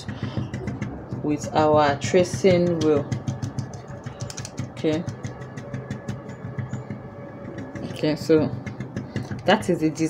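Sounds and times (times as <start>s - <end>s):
low engine-like hum: 0.0s - 10.0s
marker tapping on paper: 0.0s - 10.0s.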